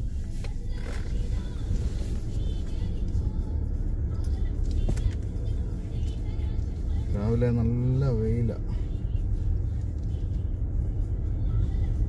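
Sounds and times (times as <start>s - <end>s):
car driving rumble: 0.0s - 12.0s.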